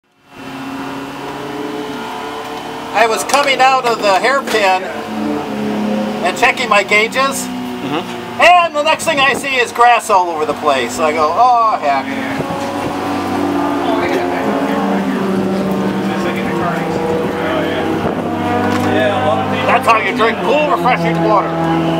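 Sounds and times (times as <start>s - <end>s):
car engine running: 0.1s - 21.9s.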